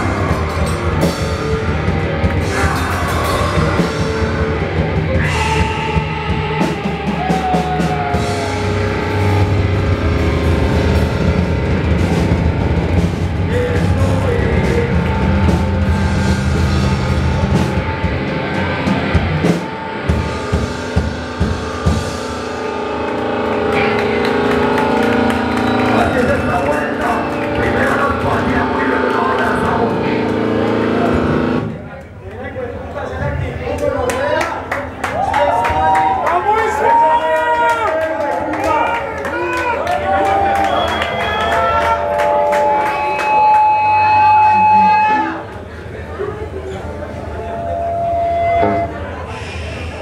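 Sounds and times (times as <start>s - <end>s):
hardcore band playing live: 0.0s - 32.2s, 33.2s - 50.0s
vocalist: 2.4s - 4.5s, 5.1s - 7.8s, 13.4s - 15.6s, 25.8s - 31.6s.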